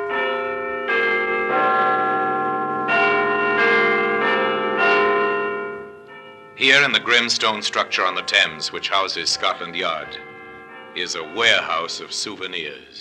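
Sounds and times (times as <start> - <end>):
large bells chiming: 0.0 - 13.0.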